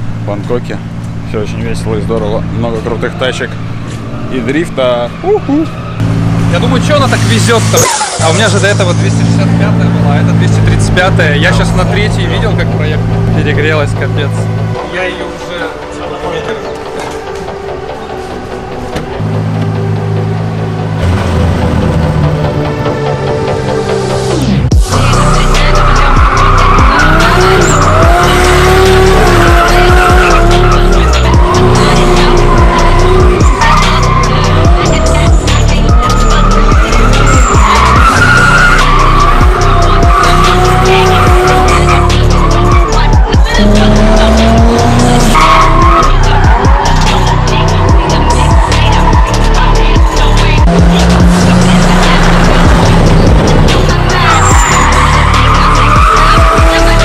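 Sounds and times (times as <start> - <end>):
car engine revving: 0.0 - 57.0
electronic music with steady beat: 22.1 - 57.0
tyres squealing: 24.8 - 57.0.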